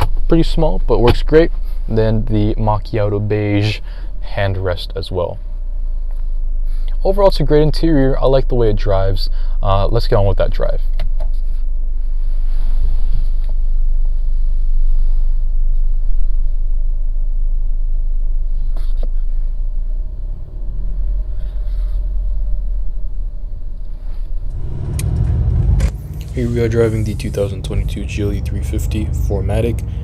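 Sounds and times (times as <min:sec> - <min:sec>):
car interior engine rumble: 0:00.0 - 0:30.0.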